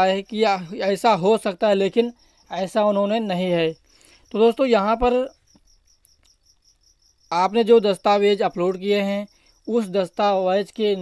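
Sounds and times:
insect chirping: 0.0s - 11.0s.

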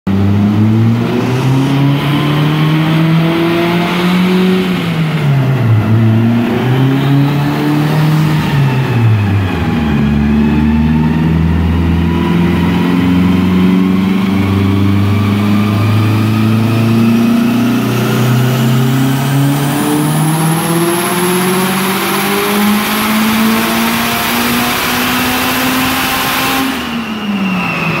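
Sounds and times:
four-cylinder engine revving: 0.1s - 28.0s
high whine: 0.1s - 28.0s.

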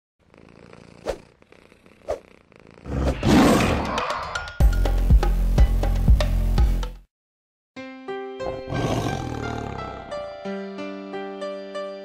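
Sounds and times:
tiger roaring: 2.9s - 4.1s, 8.7s - 10.1s.

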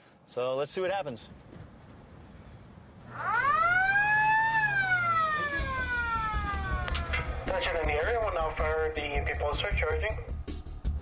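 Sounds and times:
warning siren winding up: 3.0s - 8.0s.

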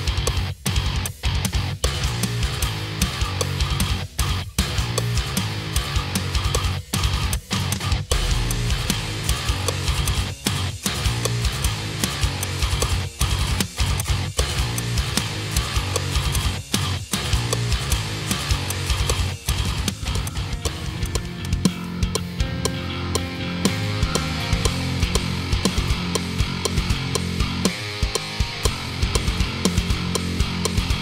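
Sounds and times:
drum kit: 0.0s - 31.0s
heavy metal guitar chugging: 0.0s - 31.0s.

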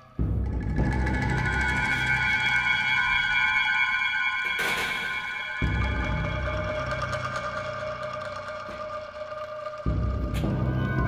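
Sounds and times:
ambient background music: 0.0s - 11.0s.

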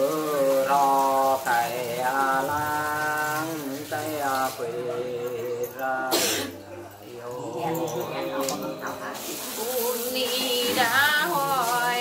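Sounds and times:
woman singing unaccompanied: 0.0s - 6.4s, 7.1s - 12.0s
loud cough: 6.1s - 6.6s.

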